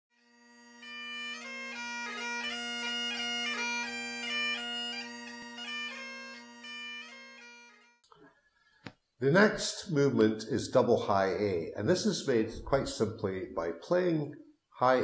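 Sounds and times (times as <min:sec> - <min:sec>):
bagpipe playing over drones: 0:00.2 - 0:08.0.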